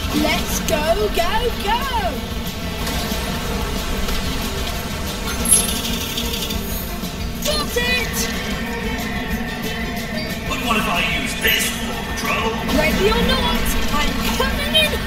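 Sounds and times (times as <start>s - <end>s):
cartoon kart engine: 0.0s - 15.0s
video game background music: 0.0s - 15.0s
sharp game sound effect: 5.3s - 6.0s.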